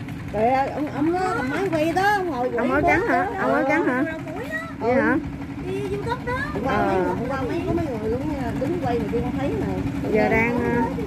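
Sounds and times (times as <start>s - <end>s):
small boat engine humming: 0.0s - 11.0s
people talking: 0.3s - 11.0s.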